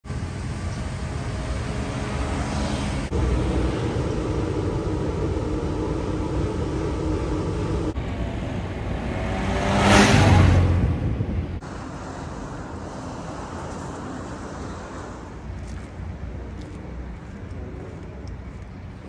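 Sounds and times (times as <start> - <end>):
car engine and tyres on road: 0.0 - 19.0
car passing by: 0.1 - 15.5.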